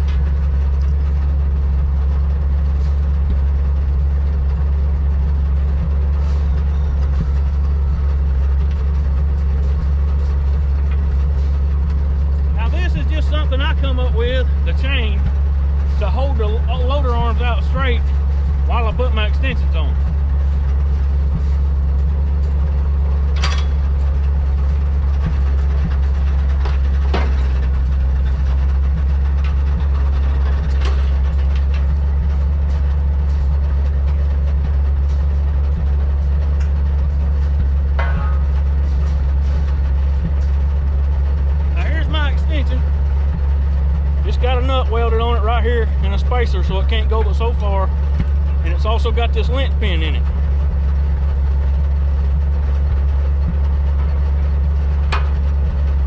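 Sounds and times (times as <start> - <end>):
truck engine idling: 0.0 - 56.0
sharp metal clanks: 23.2 - 24.2, 37.9 - 40.6.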